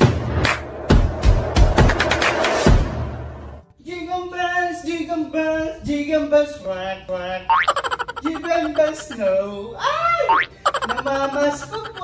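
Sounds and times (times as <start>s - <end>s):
person making wordless vocal sounds: 7.5s - 12.0s.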